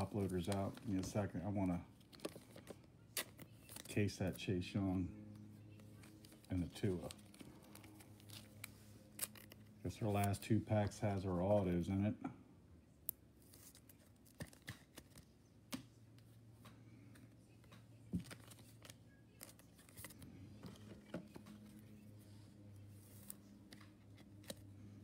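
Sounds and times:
trading cards clicking and rustling: 0.0s - 4.4s, 6.0s - 11.6s, 13.4s - 22.0s, 23.1s - 25.0s.

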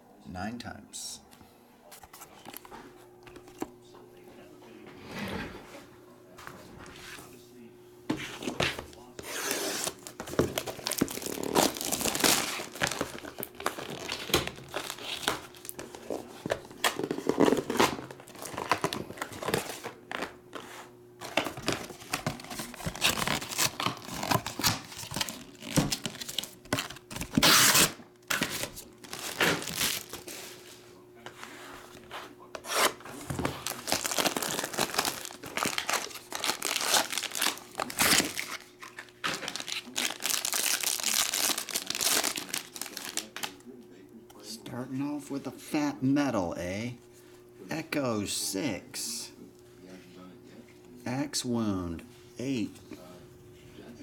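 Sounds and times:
cardboard rustling: 8.1s - 43.5s
plastic wrappers tearing and crinkling: 9.2s - 20.3s, 21.3s - 30.4s, 32.6s - 43.6s.

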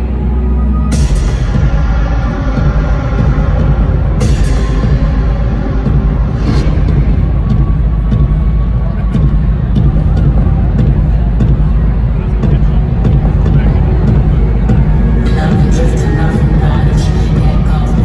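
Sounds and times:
bass-heavy concert music: 0.0s - 18.0s.

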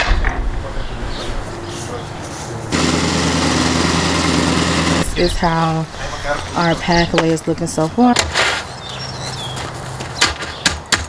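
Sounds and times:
small engine running: 2.7s - 5.3s.

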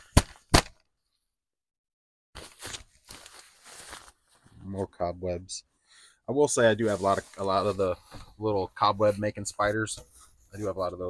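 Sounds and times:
cloth rustling: 2.4s - 4.7s.

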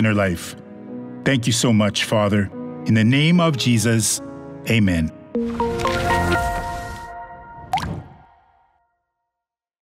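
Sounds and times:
rising water-drop sound effect: 7.6s - 8.4s.

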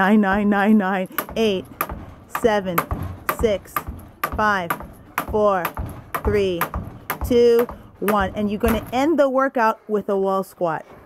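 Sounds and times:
jump rope slapping wooden deck: 0.1s - 9.1s
woman counting aloud: 2.3s - 10.8s.

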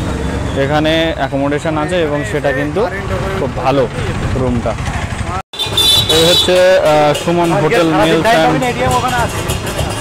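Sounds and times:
low street traffic: 0.0s - 10.0s.

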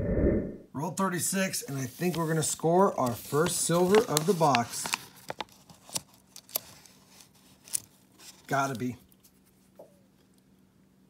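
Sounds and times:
faint paper rustle: 1.7s - 10.3s.

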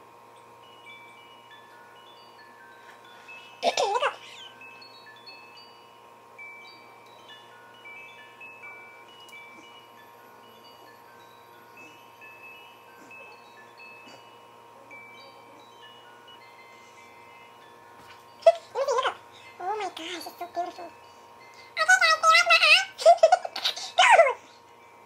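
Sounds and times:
faint steady hum: 0.0s - 25.0s
tinkling bell-like melody: 0.0s - 25.0s.

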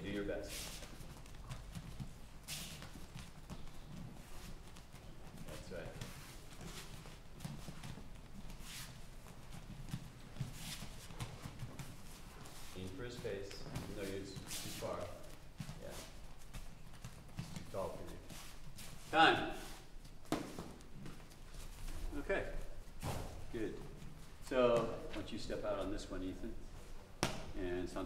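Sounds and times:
bare feet shuffling on mats: 0.0s - 28.0s
person calling out: 19.1s - 19.7s.

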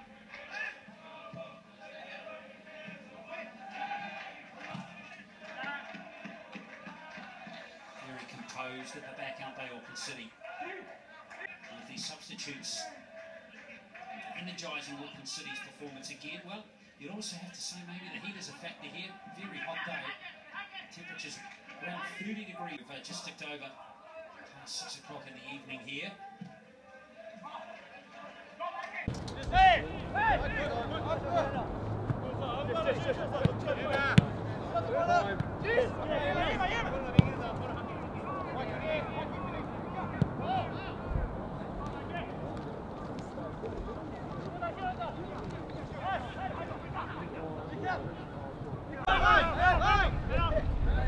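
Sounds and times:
players calling and shouting: 28.8s - 51.0s
ball kick thuds: 29.1s - 44.7s
steady outdoor rumble: 29.1s - 51.0s.

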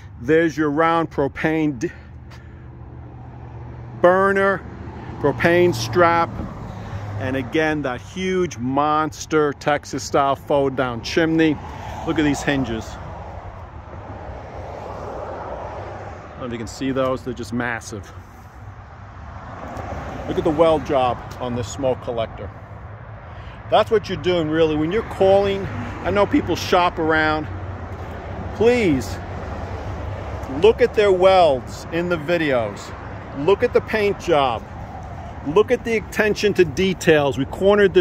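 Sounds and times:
outdoor background noise: 0.0s - 38.0s
road traffic rumble: 0.0s - 38.0s.

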